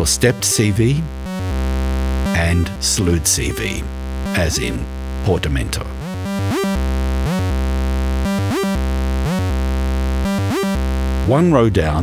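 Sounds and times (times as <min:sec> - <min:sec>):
sliding synth bassline: 0:00.0 - 0:11.4.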